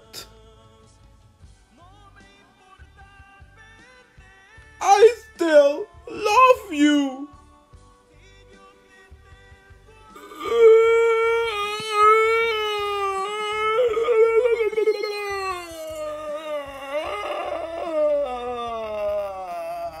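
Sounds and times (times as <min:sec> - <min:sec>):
person crying wail: 0:04.8 - 0:07.3, 0:10.2 - 0:20.0.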